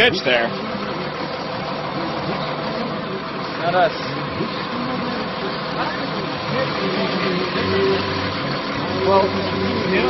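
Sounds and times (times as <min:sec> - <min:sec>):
faint voices: 0:00.0 - 0:10.0
large vehicle engine idling: 0:00.0 - 0:10.0.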